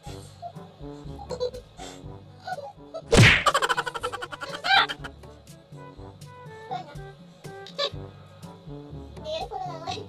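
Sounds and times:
light background music: 0:00.0 - 0:10.0
sudden loud whack: 0:03.1 - 0:03.6.

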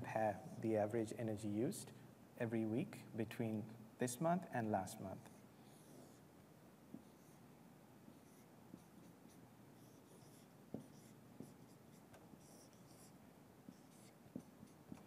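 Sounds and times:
marker squeaking on whiteboard: 0:07.0 - 0:07.4, 0:08.1 - 0:15.0
pen tapping board: 0:10.7 - 0:11.6, 0:13.7 - 0:15.0.

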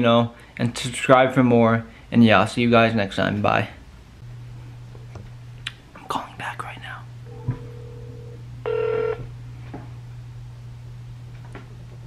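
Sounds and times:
low steady hum: 0:00.0 - 0:12.0
telephone call-progress tones: 0:07.3 - 0:09.3.

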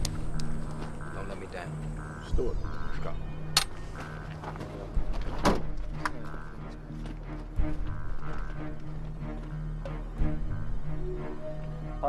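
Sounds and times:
low drone: 0:00.0 - 0:12.0
sharp clicks and thuds: 0:03.5 - 0:10.0.

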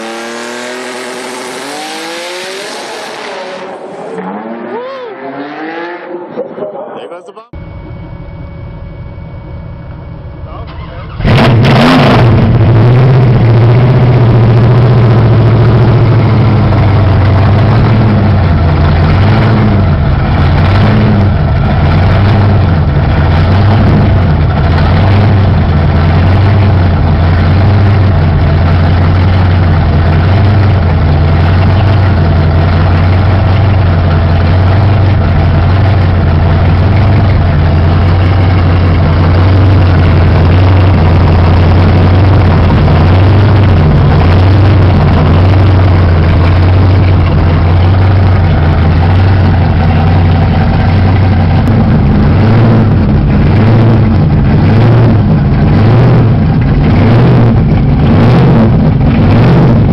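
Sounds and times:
car engine starting and idling: 0:00.0 - 0:59.9.

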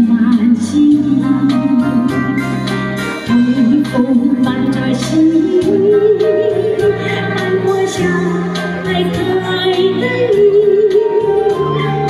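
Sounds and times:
woman singing into microphone: 0:00.0 - 0:02.6, 0:03.2 - 0:12.0
instrumental accompaniment with beat: 0:00.0 - 0:12.0.

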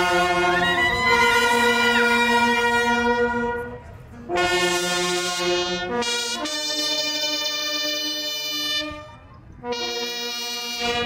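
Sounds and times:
brass band sustained chord: 0:00.0 - 0:11.0.

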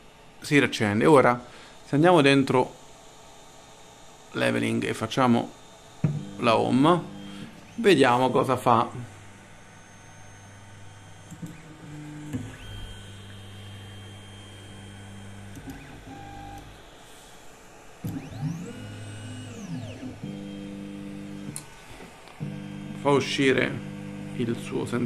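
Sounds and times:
stepper motors whining: 0:02.1 - 0:25.0.

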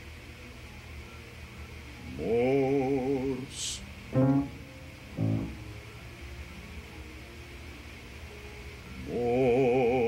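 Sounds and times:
piano notes: 0:04.1 - 0:06.1.

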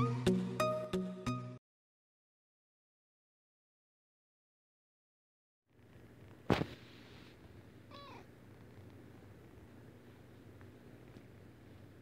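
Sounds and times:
kitten meowing: 0:07.9 - 0:08.3.

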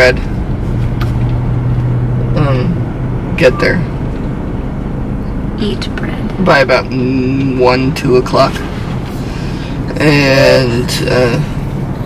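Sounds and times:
car cabin hum and road rumble: 0:00.0 - 0:12.0.

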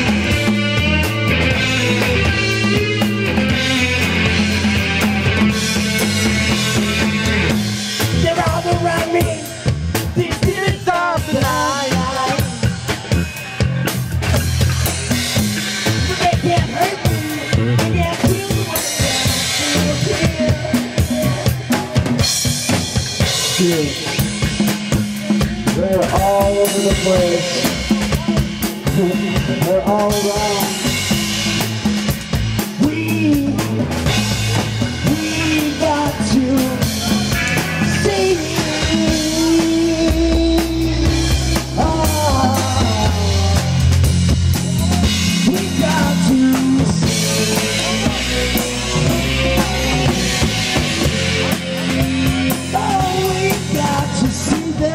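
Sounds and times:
drum kit kick and snare: 0:00.0 - 0:54.9
electric guitar sliding lead notes: 0:00.0 - 0:54.9
live reggae band playing: 0:00.0 - 0:54.9.

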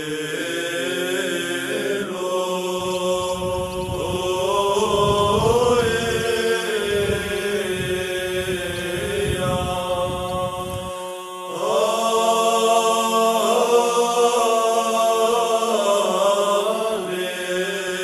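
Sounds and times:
liturgical chant singing: 0:00.0 - 0:18.0.

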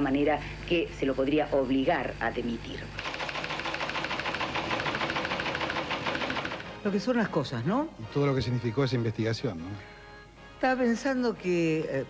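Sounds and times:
teleprinter clattering: 0:03.0 - 0:06.9.

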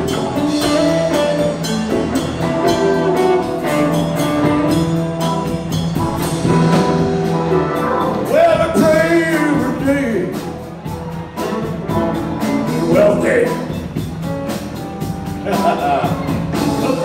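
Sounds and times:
drums: 0:00.0 - 0:17.0
electric bass: 0:00.0 - 0:17.0
electric guitar: 0:00.0 - 0:17.0.

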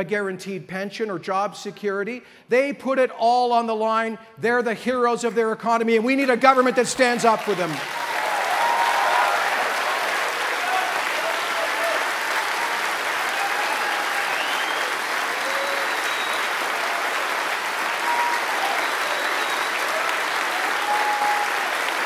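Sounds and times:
audience applauding: 0:07.1 - 0:22.0.

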